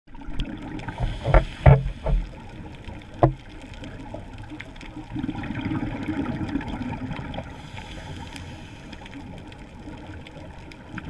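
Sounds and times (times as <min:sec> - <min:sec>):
underwater gurgling bursts: 0:00.1 - 0:11.0
underwater rush of water: 0:00.1 - 0:11.0.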